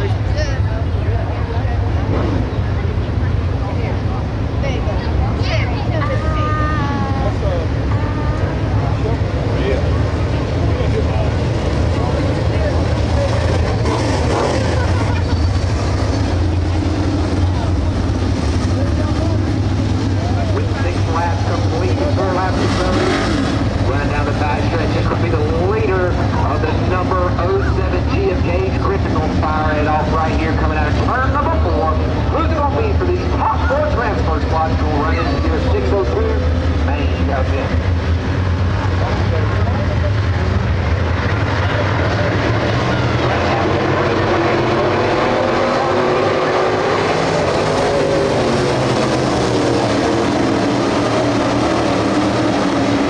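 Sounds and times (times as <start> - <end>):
race car engines rumbling: 0.0 - 53.0
voices talking: 0.0 - 53.0.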